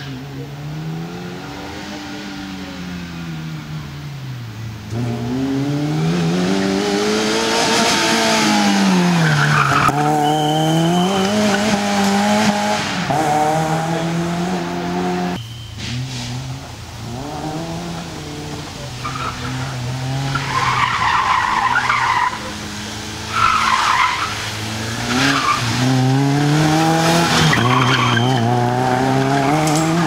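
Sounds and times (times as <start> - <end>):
rally car engine revving: 0.0 - 30.0
brief high squeal: 15.4 - 16.0, 27.5 - 28.5.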